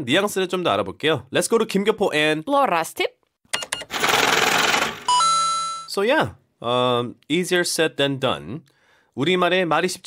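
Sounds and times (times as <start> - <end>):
dense mechanical rattling: 3.9 - 5.1.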